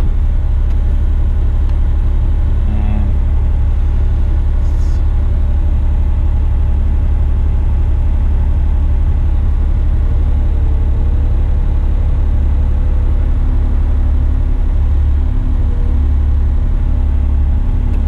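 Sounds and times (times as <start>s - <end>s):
truck engine rumbling: 0.0s - 18.0s.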